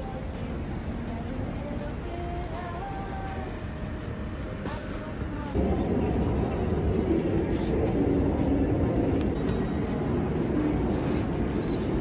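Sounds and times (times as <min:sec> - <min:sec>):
faint music: 0:00.0 - 0:12.0
low rumbling station noise: 0:00.0 - 0:12.0.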